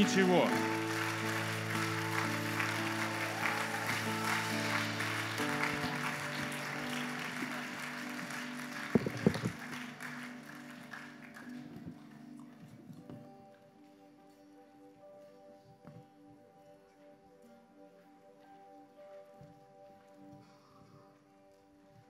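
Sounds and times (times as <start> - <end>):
audience applause: 0.0 - 12.7
soft keyboard chords: 0.0 - 22.0.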